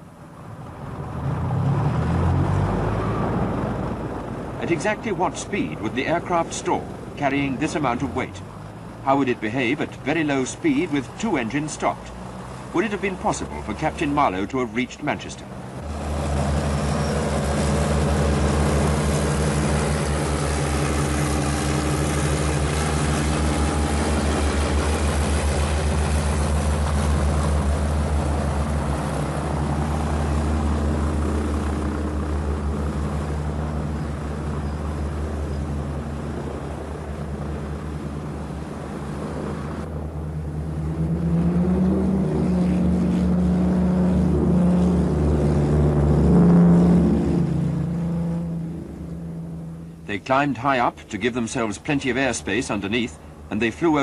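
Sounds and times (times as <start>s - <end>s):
propeller aircraft engines droning: 0.0s - 54.0s.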